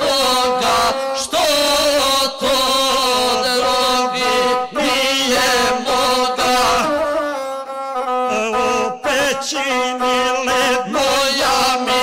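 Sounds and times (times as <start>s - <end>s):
man chanting epic song: 0.0s - 7.1s, 8.3s - 12.0s
bowed one-stringed fiddle: 3.6s - 12.0s.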